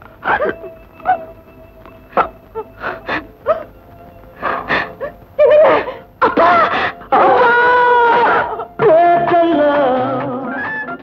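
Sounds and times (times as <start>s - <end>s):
sustained background music note: 0.0s - 11.0s.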